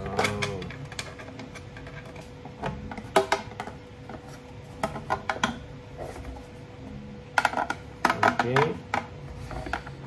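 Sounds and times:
plastic parts clicking and knocking: 0:00.0 - 0:05.7, 0:07.3 - 0:10.0.

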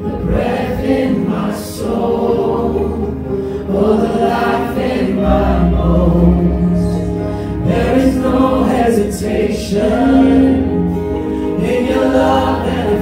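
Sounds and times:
acoustic guitar: 0:00.0 - 0:13.0
voices singing into microphones: 0:00.0 - 0:13.0
bass guitar: 0:05.2 - 0:13.0.

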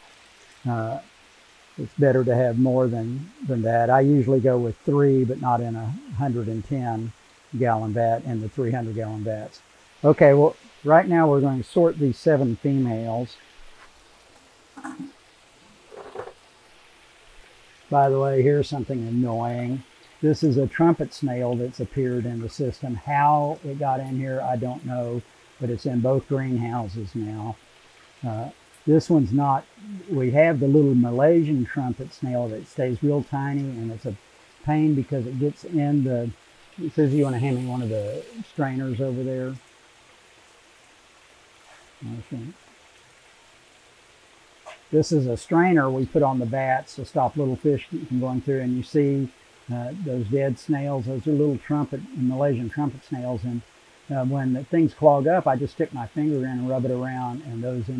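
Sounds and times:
faint steady hiss: 0:00.0 - 0:57.9.

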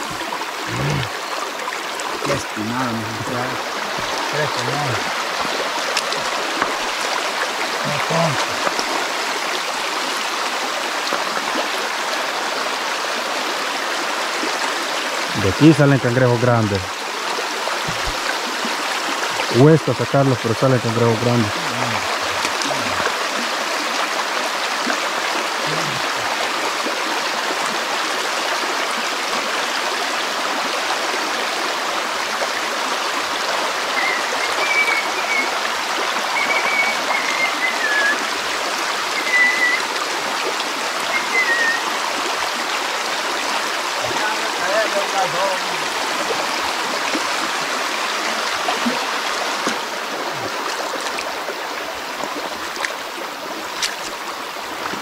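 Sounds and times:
stream rushing over stones: 0:00.0 - 0:55.0.

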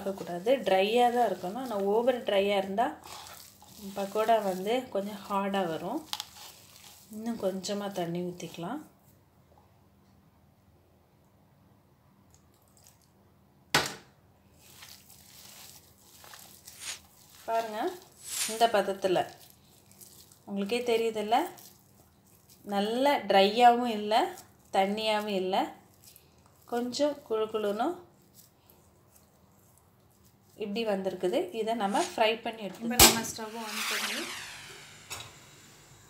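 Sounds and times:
person speaking: 0:00.0 - 0:03.0, 0:17.5 - 0:19.2, 0:31.2 - 0:34.7
hands kneading damp dough mix: 0:00.0 - 0:09.4, 0:14.4 - 0:32.6.

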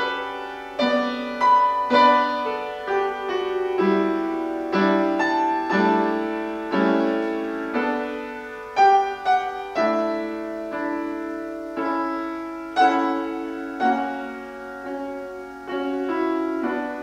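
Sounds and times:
slow piano chords: 0:00.0 - 0:17.0.

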